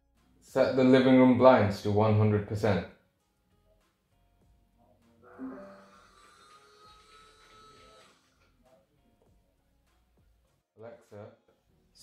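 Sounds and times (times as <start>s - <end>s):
blind motor whining: 5.4s - 8.3s.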